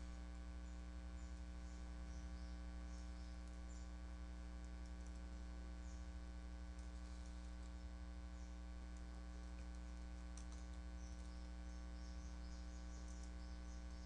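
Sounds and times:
electrical mains hum: 0.0s - 14.0s
faint high ticks: 3.0s - 14.0s.

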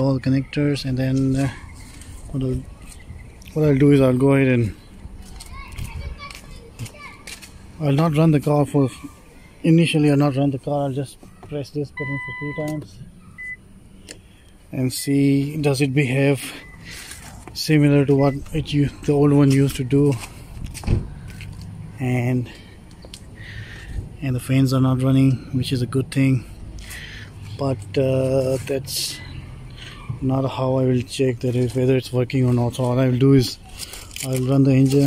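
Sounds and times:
faint children's calls: 0.0s - 13.6s
man speaking: 9.7s - 13.0s, 14.7s - 16.7s, 17.6s - 20.2s, 22.0s - 22.6s, 24.2s - 26.5s, 27.5s - 29.3s, 30.2s - 33.6s, 34.2s - 35.0s
soft thump: 20.8s - 21.1s.

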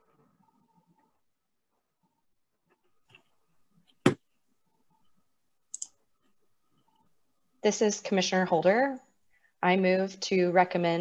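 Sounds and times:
faint high clicks: 5.7s - 6.0s.

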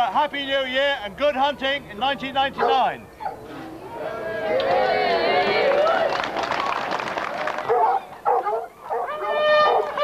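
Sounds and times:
crowd chatter: 0.0s - 10.0s
hounds yelping: 2.6s - 3.5s, 7.7s - 10.0s.

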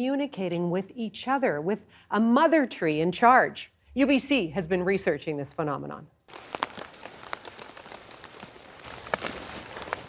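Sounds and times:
twigs and leaves crackling: 6.3s - 10.0s.

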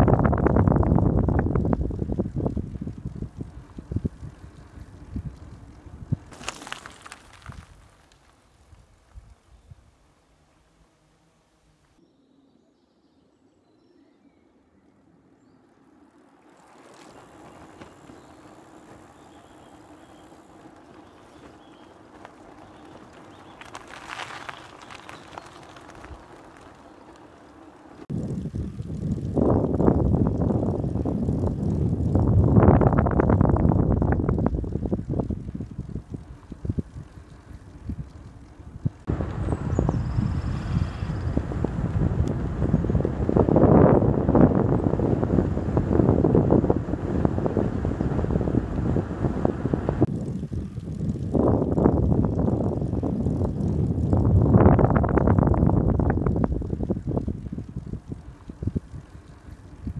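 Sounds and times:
wind buffeting microphone: 0.0s - 7.9s, 16.7s - 59.9s.

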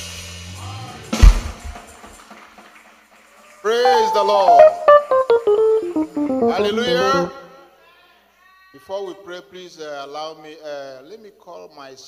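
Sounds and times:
band music: 3.9s - 7.6s.

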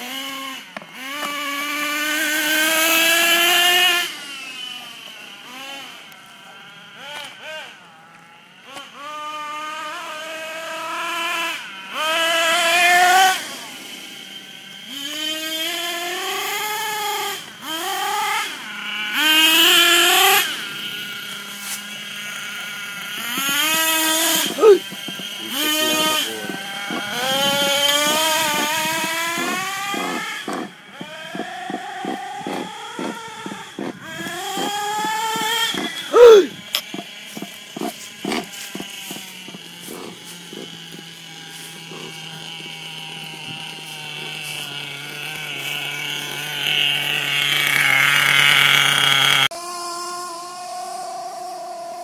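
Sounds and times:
toy car motor revving: 0.0s - 52.0s.

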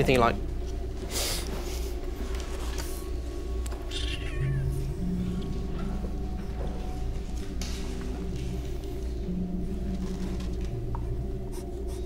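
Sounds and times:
kitten meowing: 3.9s - 4.9s.

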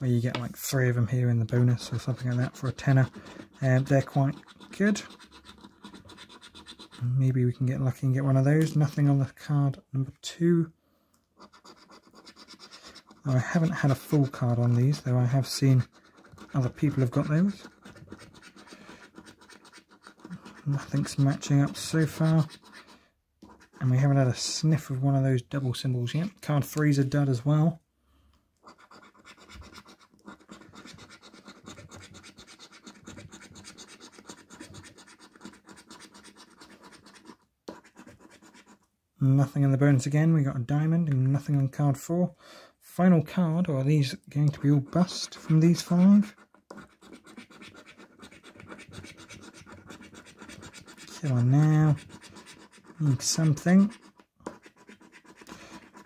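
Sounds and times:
coin scratching scratchcard: 1.8s - 7.1s, 11.4s - 23.8s, 28.6s - 38.8s, 44.9s - 56.0s.

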